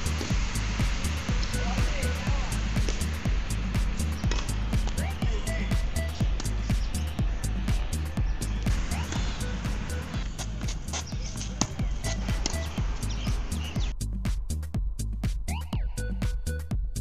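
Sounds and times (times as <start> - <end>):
music with driving beat: 0.0 - 17.0.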